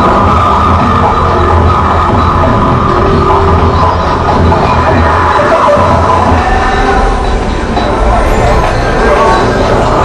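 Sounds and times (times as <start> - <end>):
experimental electronic music: 0.0 - 10.0.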